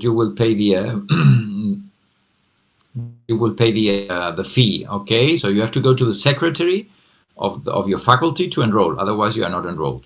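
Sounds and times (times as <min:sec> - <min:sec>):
man speaking: 0:00.0 - 0:01.8, 0:03.0 - 0:10.0
man hesitating vocal sound: 0:03.0 - 0:04.2.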